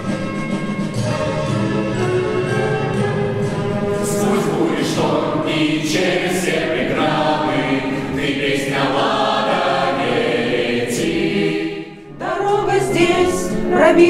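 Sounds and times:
choir singing a cappella: 4.0s - 14.0s.

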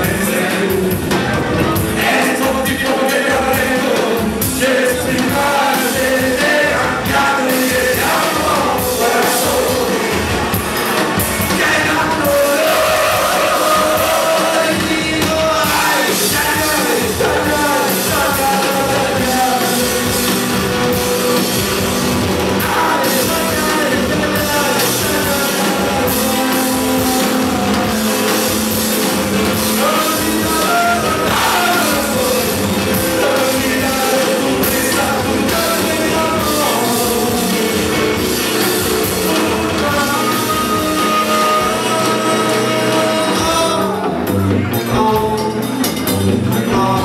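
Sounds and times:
man singing: 0.0s - 10.5s, 11.2s - 47.0s
drum beat: 0.0s - 47.0s
electric guitar: 0.0s - 47.0s.

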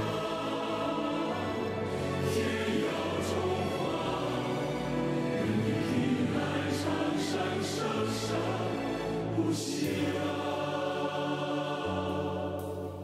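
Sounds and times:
choir singing long held notes: 0.0s - 13.0s.

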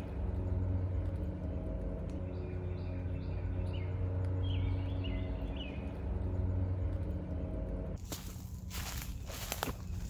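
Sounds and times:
faint hum tones: 0.0s - 10.0s
low steady rumble: 0.0s - 10.0s.

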